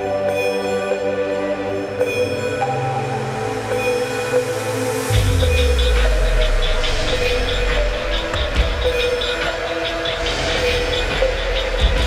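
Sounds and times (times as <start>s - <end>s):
electronic music: 0.0s - 12.0s.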